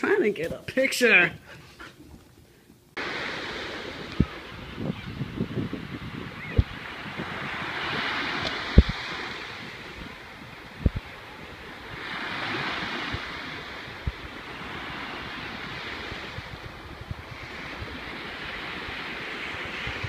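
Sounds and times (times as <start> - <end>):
waves breaking on beach: 3.0 - 20.0
wind buffeting microphone: 3.0 - 20.0.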